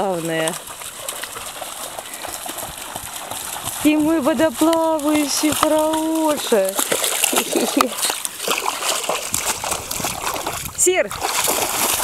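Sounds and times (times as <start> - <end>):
woman speaking: 0.0 - 0.6, 3.8 - 8.2, 10.8 - 11.2
dog splashing through water: 0.0 - 12.0.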